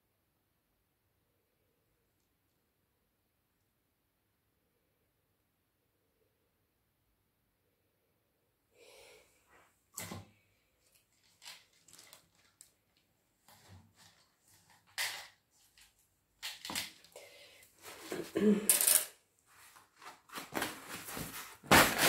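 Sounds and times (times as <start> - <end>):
small objects rustling: 10.7 - 22.0.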